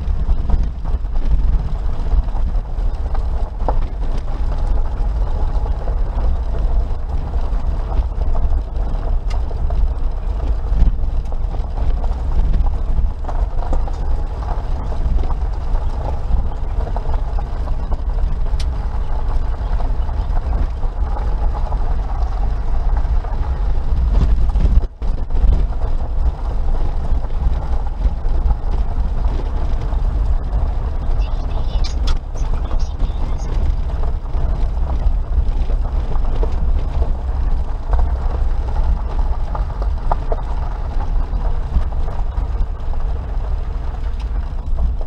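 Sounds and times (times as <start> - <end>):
engine and tyres on gravel: 0.0 - 45.0.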